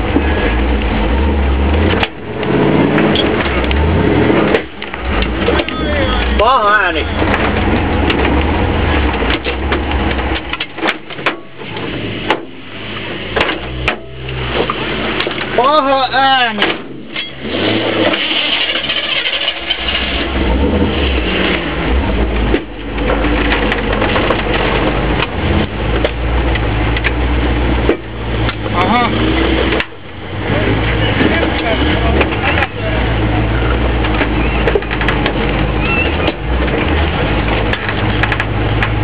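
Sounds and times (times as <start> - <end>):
truck engine under load: 0.0 - 39.0.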